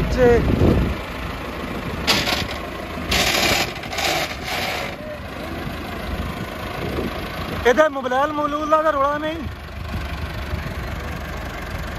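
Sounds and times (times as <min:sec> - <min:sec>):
tractor diesel engine idling: 0:00.0 - 0:11.9.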